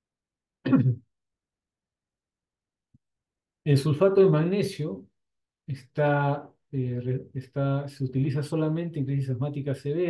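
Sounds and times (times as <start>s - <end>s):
man clearing throat: 0.7s - 1.0s.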